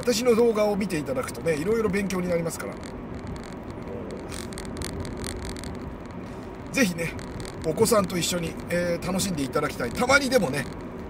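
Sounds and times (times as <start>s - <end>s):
tyre and engine rumble: 0.0s - 11.0s.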